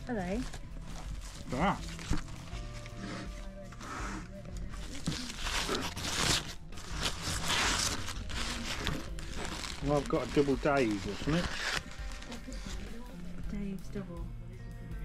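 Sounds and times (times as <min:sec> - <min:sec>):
soft background music: 0:00.0 - 0:15.0
food wrappers crinkling: 0:04.6 - 0:13.0.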